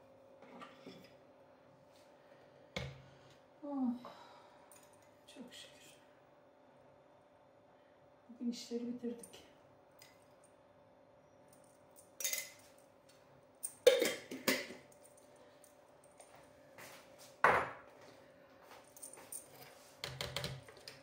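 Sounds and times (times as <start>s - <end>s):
clinks and knocks of kitchen items: 12.0s - 12.8s, 13.6s - 15.2s.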